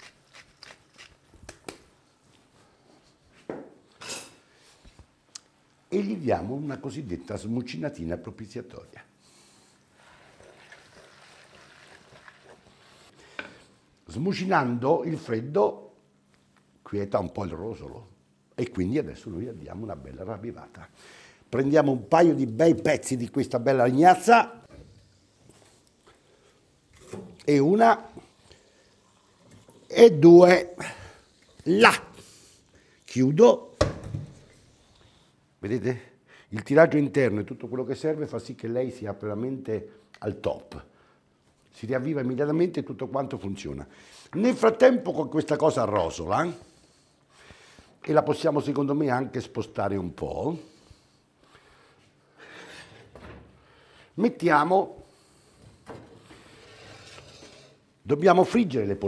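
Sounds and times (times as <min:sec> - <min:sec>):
pot scraping across stove top: 0:56.1 - 0:57.9.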